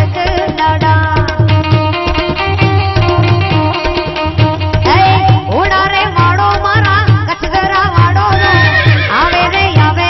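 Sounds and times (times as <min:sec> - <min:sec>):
harmonium melody: 0:00.0 - 0:10.0
tabla beat: 0:00.0 - 0:10.0.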